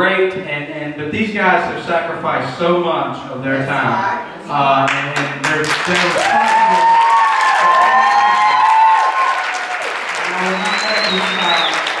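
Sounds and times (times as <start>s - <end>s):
audience applauding: 4.8s - 12.0s
cheering voices: 5.5s - 12.0s.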